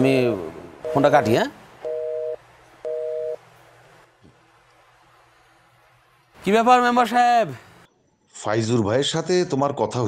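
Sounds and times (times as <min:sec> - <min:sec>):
telephone busy signal beeps: 0:00.9 - 0:03.4.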